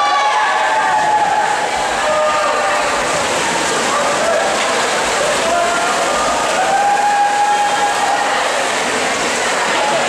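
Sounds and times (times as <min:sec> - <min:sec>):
spectators shouting: 0:00.0 - 0:08.6
splashing water: 0:00.0 - 0:10.0.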